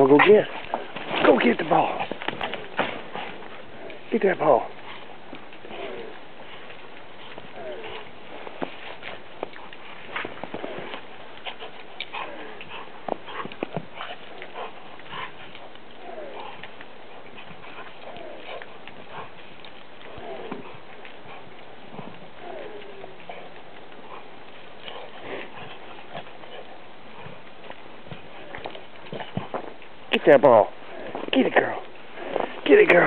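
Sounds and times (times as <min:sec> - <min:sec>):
paws crunching in snow: 0:00.0 - 0:33.0
dog whining: 0:07.2 - 0:08.2, 0:11.6 - 0:19.3, 0:20.0 - 0:24.3.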